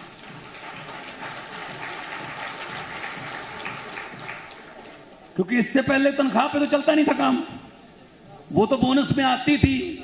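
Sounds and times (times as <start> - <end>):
crowd applauding: 0.0 - 5.3.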